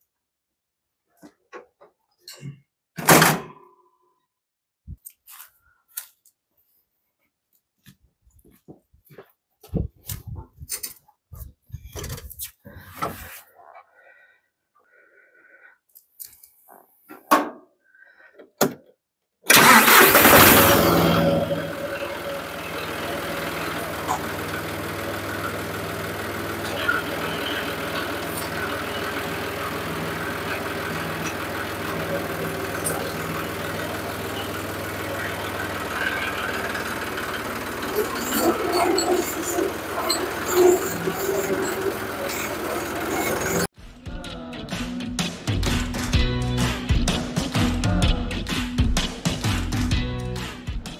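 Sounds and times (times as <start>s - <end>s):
tractor diesel engine starting: 19.5s - 43.7s.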